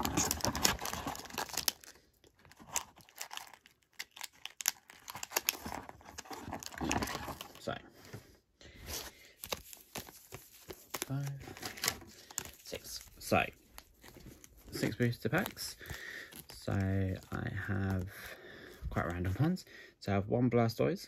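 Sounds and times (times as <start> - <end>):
foil packs crinkling: 0.0 - 7.8, 8.9 - 19.5.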